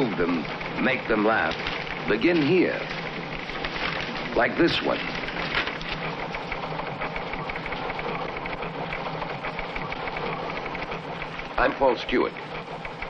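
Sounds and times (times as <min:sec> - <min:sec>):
teletype machines clattering: 0:00.0 - 0:13.0
typewriters clattering: 0:00.0 - 0:13.0.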